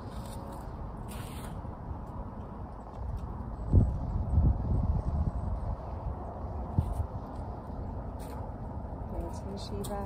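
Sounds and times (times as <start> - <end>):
scraping rustles on snow: 0.0 - 1.6
steady low rumble: 0.0 - 10.0.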